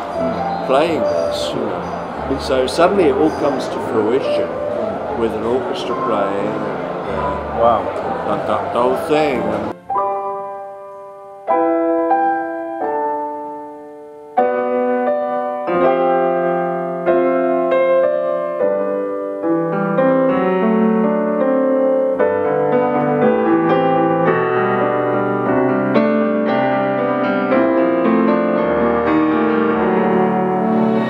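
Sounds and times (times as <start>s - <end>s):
grand piano chords: 0.0s - 31.0s.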